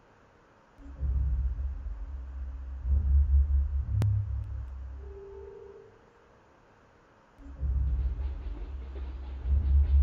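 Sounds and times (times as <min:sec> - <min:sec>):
soft held tone: 0:05.0 - 0:06.2.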